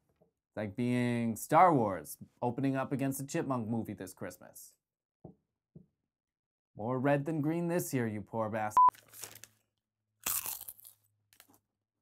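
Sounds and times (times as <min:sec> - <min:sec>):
bag of chips crinkling: 0:08.9 - 0:11.6.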